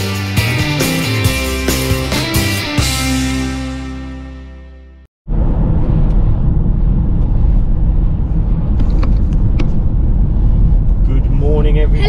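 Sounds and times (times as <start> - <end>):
road and engine noise inside van: 5.3 - 12.0.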